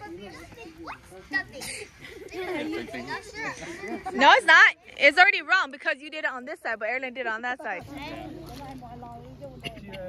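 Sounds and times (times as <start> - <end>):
children talking and calling out: 0.0 - 6.0, 7.3 - 10.0.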